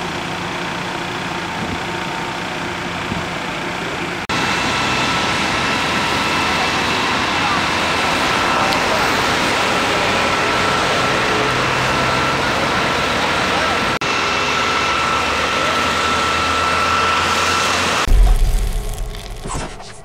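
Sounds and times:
fire engines running: 0.0s - 20.0s
deep boom: 18.1s - 20.0s.

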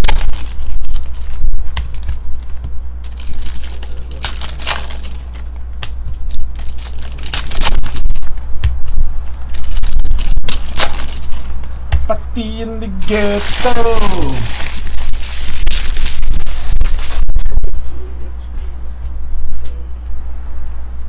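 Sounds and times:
foil wrappers crinkling and tearing: 0.0s - 5.6s, 6.2s - 8.4s, 9.2s - 11.6s, 13.0s - 17.6s
steady low hum: 0.0s - 21.0s
man talking: 12.1s - 14.6s.

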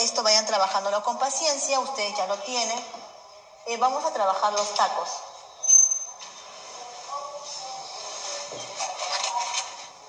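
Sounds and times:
faint music: 0.0s - 10.0s
faint background voices: 4.5s - 10.0s.

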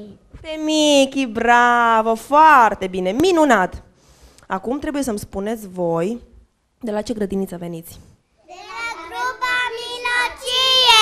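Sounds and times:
children answering in sing-song voices: 8.4s - 11.0s.

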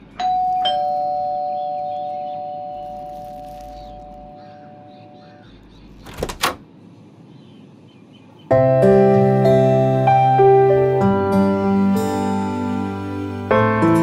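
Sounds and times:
two-tone doorbell chime: 0.2s - 3.0s.

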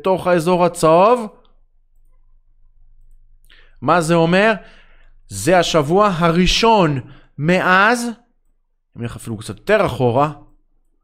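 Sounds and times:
man speaking: 0.0s - 1.5s, 3.8s - 4.7s, 5.3s - 8.3s, 8.9s - 10.6s
computer mouse clicks: 1.4s - 3.4s.

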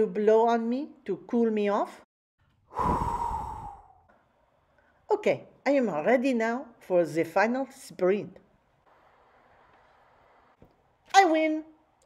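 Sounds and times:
woman blowing out breath: 2.7s - 4.0s.

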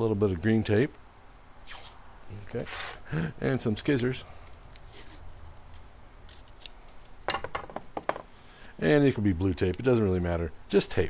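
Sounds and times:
masking tape tearing off roll: 1.6s - 2.0s, 4.5s - 5.6s.

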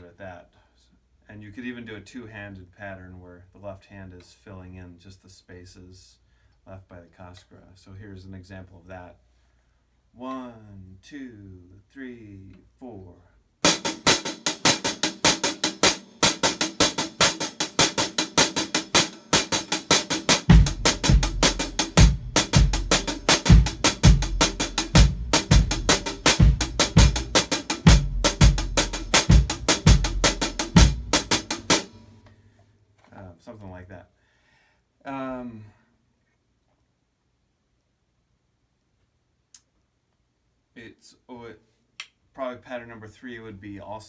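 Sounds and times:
drum sticking pattern: 13.6s - 32.1s.

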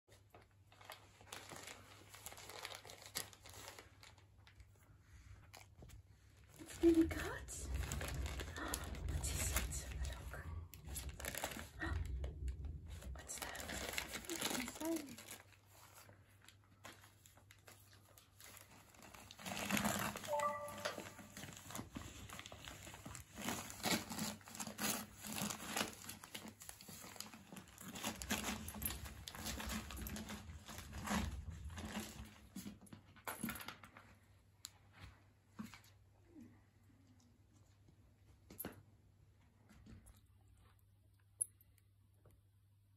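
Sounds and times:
wrapping paper crinkling and tearing: 0.1s - 4.8s, 6.5s - 12.2s, 13.2s - 32.4s.

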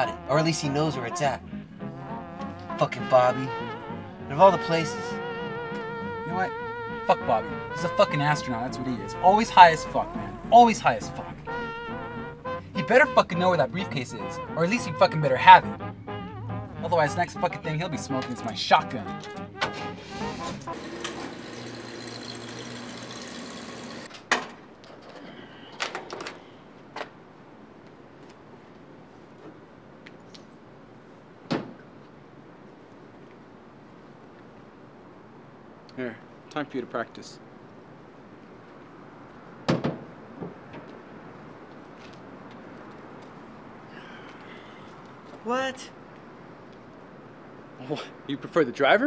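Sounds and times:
low rumble: 8.9s - 12.8s
car door shutting: 19.4s - 20.7s.

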